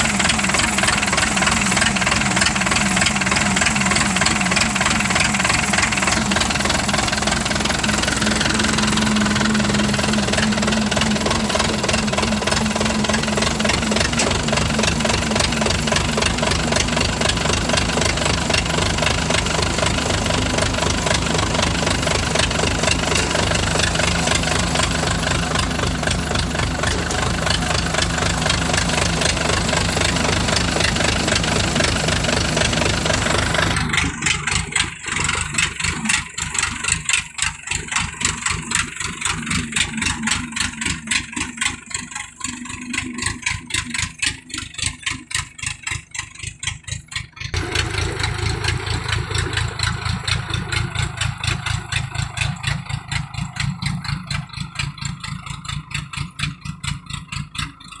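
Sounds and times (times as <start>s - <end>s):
tracked carrier engine running: 0.0s - 58.0s.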